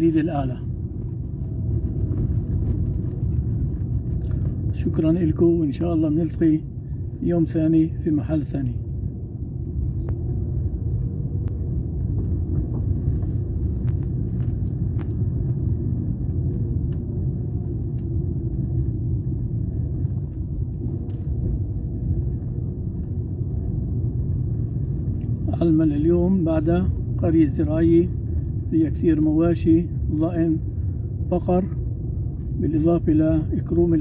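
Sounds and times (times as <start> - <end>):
car engine and road noise: 0.0 - 34.0.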